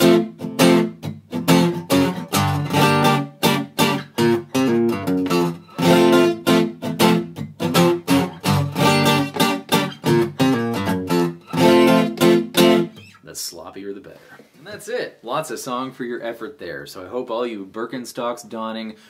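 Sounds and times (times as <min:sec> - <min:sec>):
acoustic guitar strummed fast: 0:00.0 - 0:13.2.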